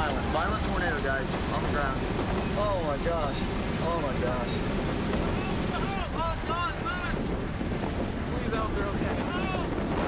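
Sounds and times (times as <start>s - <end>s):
strong wind buffeting microphone: 0.0s - 10.0s.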